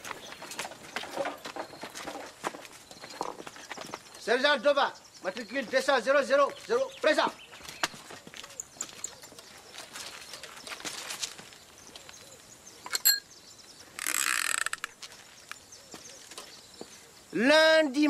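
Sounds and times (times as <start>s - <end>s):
sharp ringing click: 12.9s - 13.3s.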